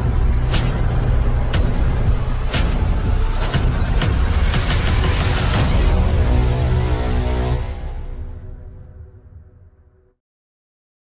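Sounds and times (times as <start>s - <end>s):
deep rumble: 0.0s - 9.9s.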